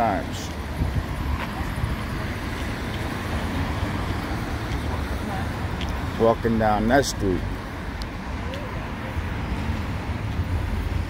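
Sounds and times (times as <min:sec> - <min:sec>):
road traffic: 0:00.0 - 0:11.0
wind buffeting microphone: 0:00.4 - 0:06.1.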